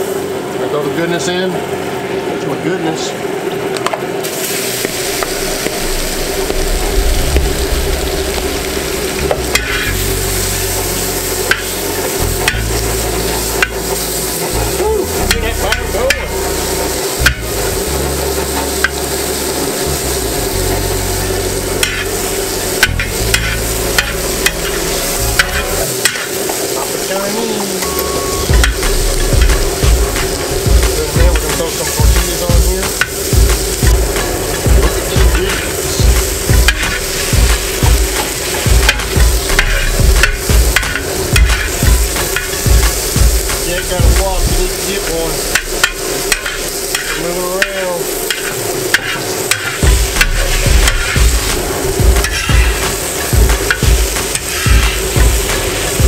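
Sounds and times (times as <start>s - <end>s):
fish sizzling in butter: 3.3s - 56.0s
metal spatula scraping and tapping: 9.5s - 10.0s, 21.8s - 22.1s, 22.8s - 24.8s, 25.4s - 26.3s, 38.2s - 42.6s, 45.5s - 51.2s.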